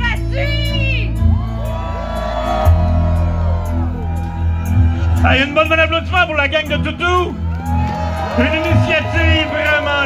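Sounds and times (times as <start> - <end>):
live music with bass line: 0.0 - 10.0.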